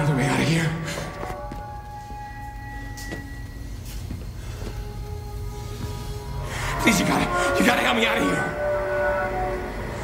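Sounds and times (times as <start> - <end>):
low steady music drone: 0.0 - 10.0.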